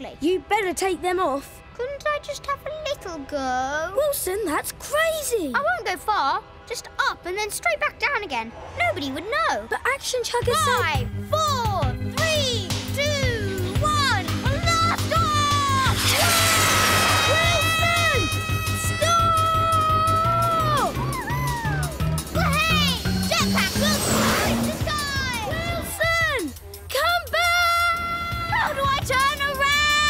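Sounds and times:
cartoon background music: 0:00.0 - 0:30.0.

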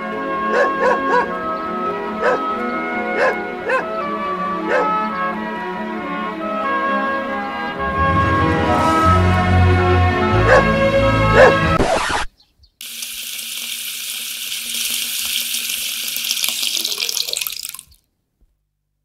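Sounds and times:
music: 0:00.0 - 0:12.0
dog urinating stream: 0:12.8 - 0:18.1.

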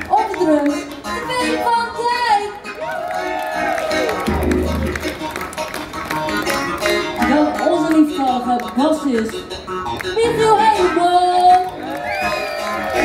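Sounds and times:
live rock band playing: 0:00.7 - 0:11.2.

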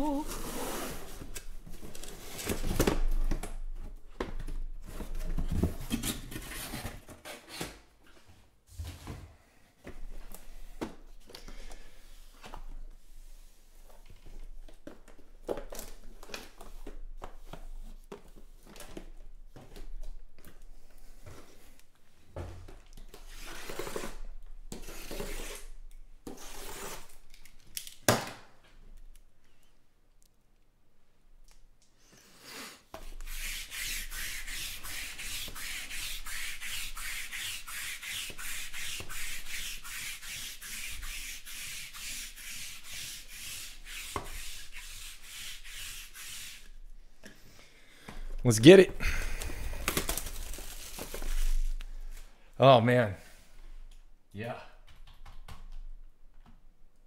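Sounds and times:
cardboard boxes rustling and scraping: 0:04.5 - 0:09.4.

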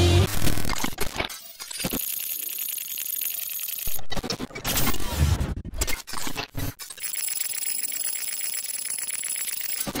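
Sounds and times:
digital glitch bursts: 0:06.9 - 0:10.0.

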